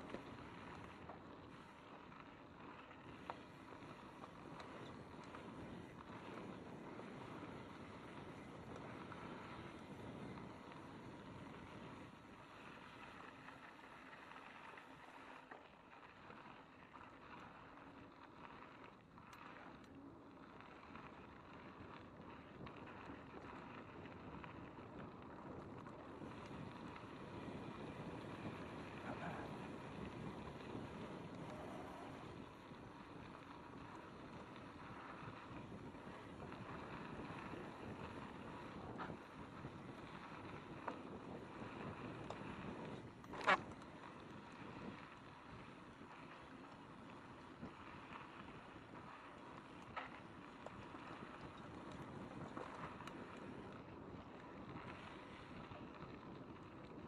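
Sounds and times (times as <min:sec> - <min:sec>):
bike rattling: 0:00.0 - 0:57.0
bike tyres on gravel trail: 0:00.0 - 0:57.0
wind on microphone: 0:20.7 - 0:57.0.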